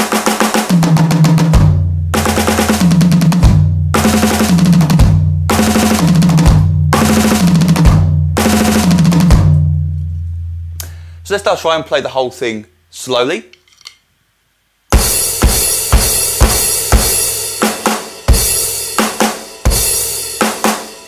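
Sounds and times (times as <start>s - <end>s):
electronic drum kit runs: 0.0s - 9.8s, 14.9s - 21.0s.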